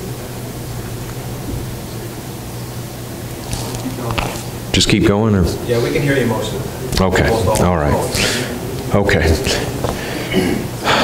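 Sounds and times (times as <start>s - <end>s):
low electrical hum: 0.0s - 11.0s
microphone hiss: 0.0s - 11.0s.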